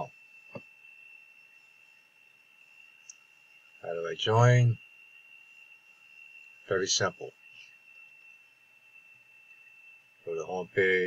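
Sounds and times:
high-pitched whine: 0.0s - 11.0s.

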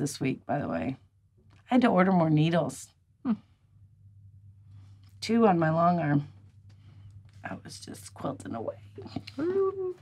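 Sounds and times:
low steady hum: 0.0s - 10.0s
woman humming hmm: 9.3s - 10.0s.

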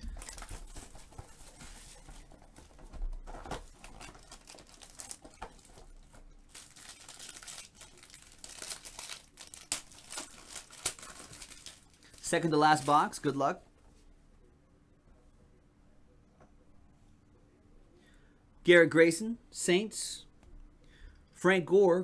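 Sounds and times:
plastic shrink wrap crinkling: 0.0s - 13.4s.

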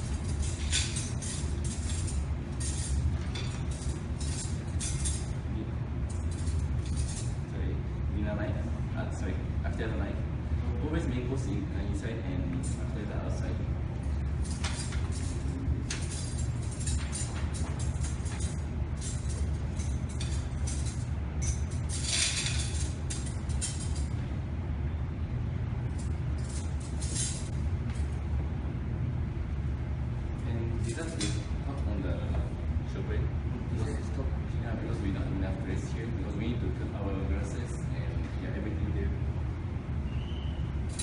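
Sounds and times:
steady low hum: 0.0s - 41.0s
metal cutlery clinking: 14.4s - 24.1s.

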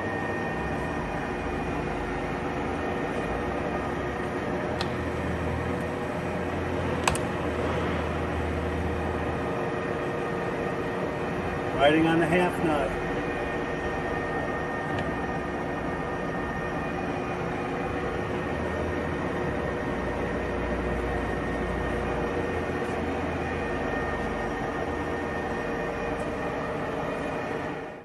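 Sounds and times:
lathe gear train humming: 0.0s - 28.0s.

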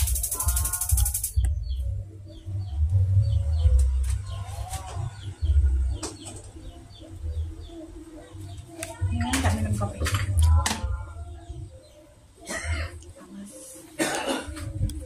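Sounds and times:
high trill: 0.0s - 1.5s
small bird chirping: 0.0s - 3.8s.

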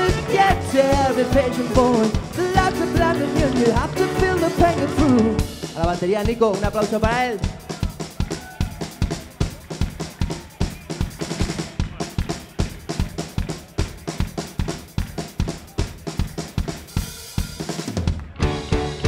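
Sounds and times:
kick drum and snare strokes: 0.0s - 19.0s.

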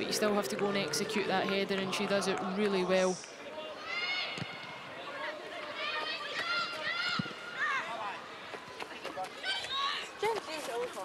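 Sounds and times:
players and crowd shouting: 0.3s - 10.3s.

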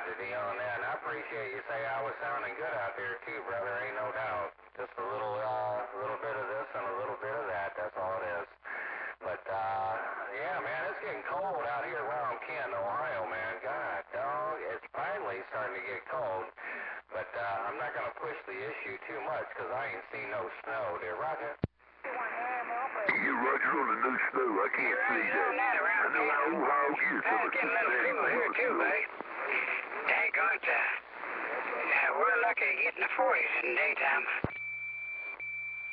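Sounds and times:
voice over radio speaker: 0.0s - 34.5s.

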